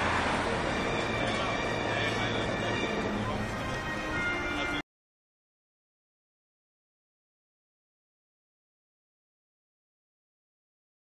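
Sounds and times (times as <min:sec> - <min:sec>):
fountain water jets roaring: 0:00.0 - 0:04.6
crowd voices: 0:00.0 - 0:04.8.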